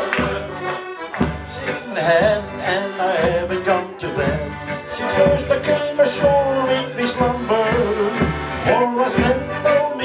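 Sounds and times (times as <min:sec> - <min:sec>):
accordion: 0:00.0 - 0:10.0
male choir singing shanty: 0:00.0 - 0:10.0
steady beat: 0:00.0 - 0:10.0.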